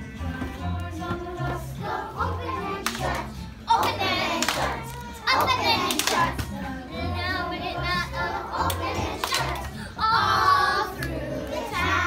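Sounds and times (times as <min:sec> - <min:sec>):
children singing: 0:00.8 - 0:12.0
children clapping: 0:02.8 - 0:06.5, 0:08.6 - 0:09.7.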